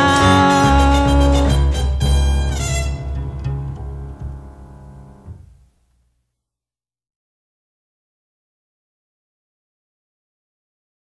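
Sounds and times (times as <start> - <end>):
orchestral chord: 0.0 - 5.3.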